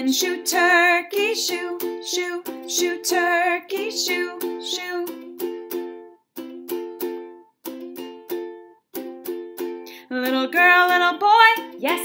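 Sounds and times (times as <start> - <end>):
plucked string instrument strumming: 0.0 - 12.0.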